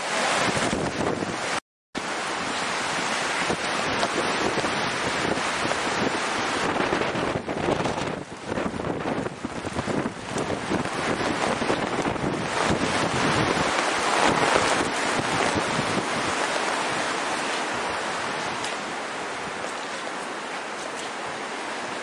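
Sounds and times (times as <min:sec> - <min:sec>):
wind gusting across microphone: 0:00.0 - 0:22.0.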